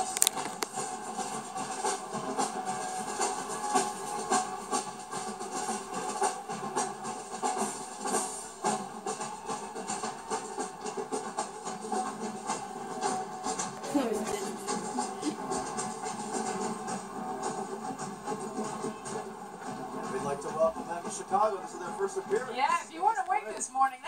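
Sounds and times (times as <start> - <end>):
marching drumline playing: 0.7 - 23.2.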